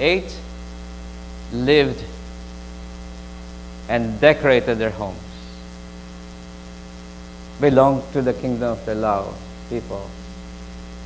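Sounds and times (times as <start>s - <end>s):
man speaking: 0.0s - 0.5s, 1.5s - 2.2s, 3.9s - 5.6s, 7.6s - 10.2s
electrical mains hum: 0.0s - 11.0s
faint high whine: 0.0s - 11.0s.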